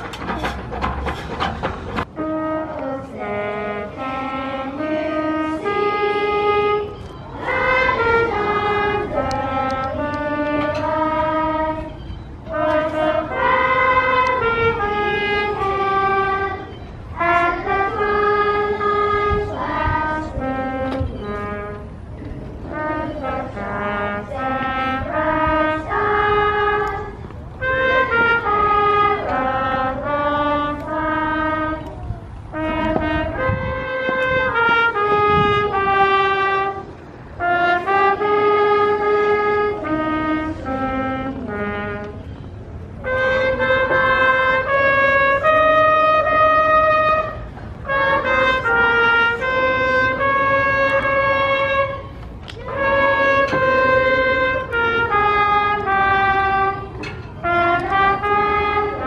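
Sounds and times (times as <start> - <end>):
brass instruments playing solemn tune: 0.0 - 59.0.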